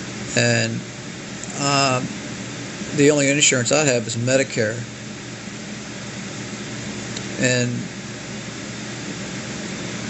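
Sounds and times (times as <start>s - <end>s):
faint low hum: 0.0s - 10.0s
steady hiss: 0.0s - 10.0s.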